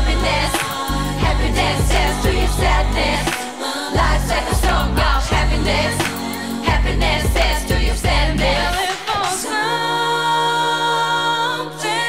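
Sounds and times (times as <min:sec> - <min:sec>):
deep bass line: 0:00.0 - 0:03.3, 0:04.0 - 0:06.1, 0:06.7 - 0:08.8
neo-soul hip-hop song: 0:00.0 - 0:12.0
women singing: 0:00.0 - 0:12.0.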